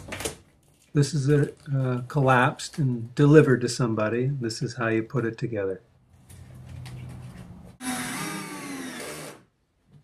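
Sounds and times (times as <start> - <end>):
cordless drill driving screw: 7.8 - 9.4.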